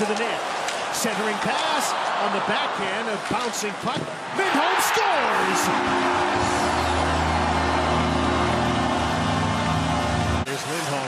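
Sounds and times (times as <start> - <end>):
crowd cheering: 0.0 - 10.5
arena goal horn blast: 5.3 - 10.2.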